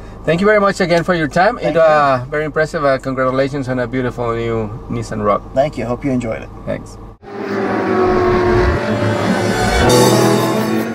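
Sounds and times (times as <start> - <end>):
car engine running: 0.0 - 10.9.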